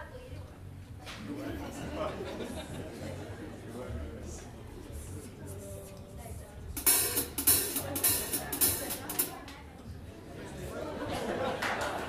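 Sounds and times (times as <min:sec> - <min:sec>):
cymbal crashes: 0:06.8 - 0:09.3
drum hits: 0:06.8 - 0:09.4.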